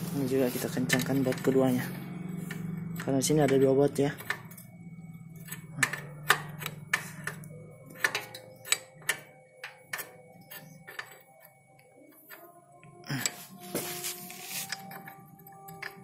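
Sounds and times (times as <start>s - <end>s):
low steady hum: 0.0s - 16.0s
spanner metallic clicks: 5.4s - 11.5s.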